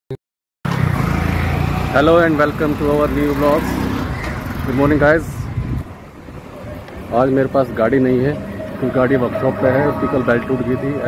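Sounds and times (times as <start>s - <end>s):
passing vehicles engine rumble: 0.7s - 11.0s.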